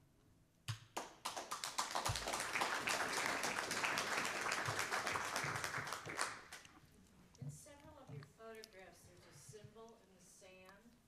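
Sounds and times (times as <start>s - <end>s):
audience applauding: 1.0s - 6.7s.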